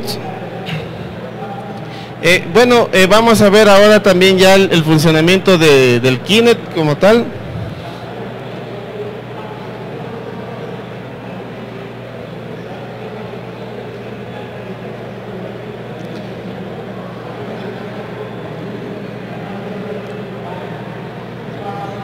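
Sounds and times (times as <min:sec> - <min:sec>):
low rumble of event hall: 0:00.0 - 0:22.0.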